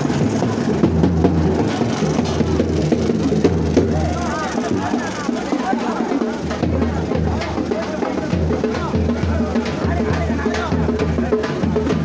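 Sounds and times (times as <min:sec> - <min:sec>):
drums beating fast: 0:00.0 - 0:12.0.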